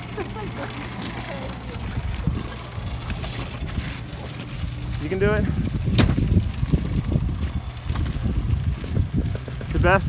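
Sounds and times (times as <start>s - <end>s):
small vehicle rumbling over dirt: 0.0s - 10.0s.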